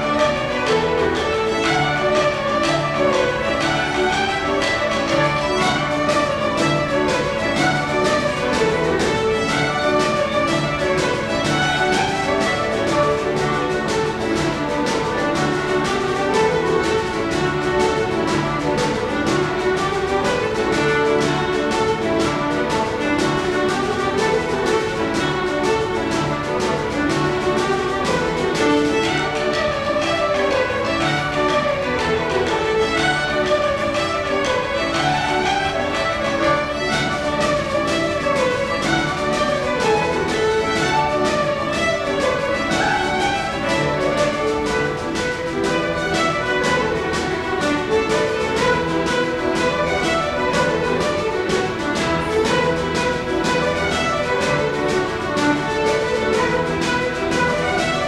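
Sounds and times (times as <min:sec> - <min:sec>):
fiddles playing a jig: 0:00.0 - 0:58.0
piano accompaniment: 0:00.0 - 0:58.0
steady drum beat: 0:00.0 - 0:58.0.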